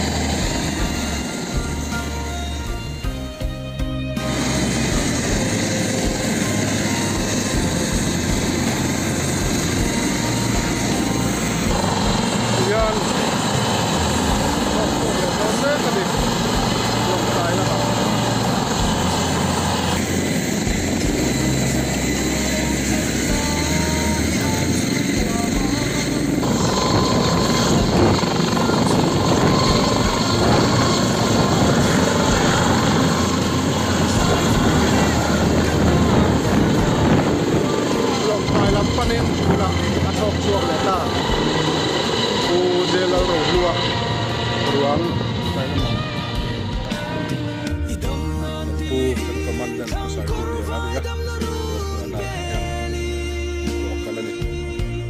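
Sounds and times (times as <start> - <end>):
helicopter rotor and turbine: 0.0 - 55.0
people's voices: 4.2 - 55.0.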